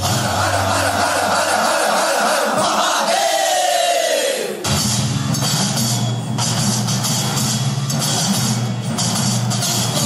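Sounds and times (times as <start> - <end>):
chorus of voices shouting: 0.0 - 4.6.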